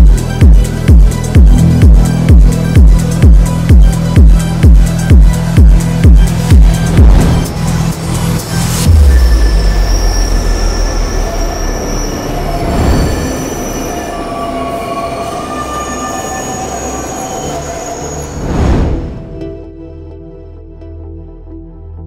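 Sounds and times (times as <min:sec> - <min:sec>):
music: 0:00.0 - 0:22.0
train rumble: 0:00.1 - 0:09.2
train wheels squealing: 0:08.9 - 0:18.6.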